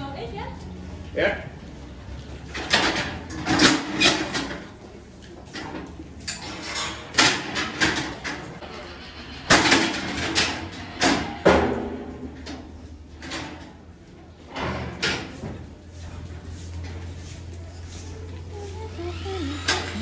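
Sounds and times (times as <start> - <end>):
steel gates banging and rattling: 2.5 - 4.7, 5.6 - 15.4, 19.2 - 20.0.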